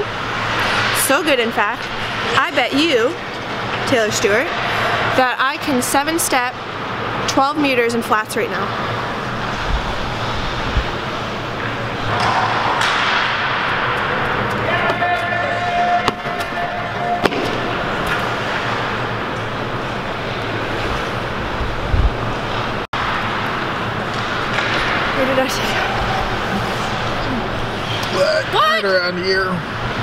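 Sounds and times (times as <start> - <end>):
indoor hall noise: 0.0 - 7.4, 8.7 - 30.0.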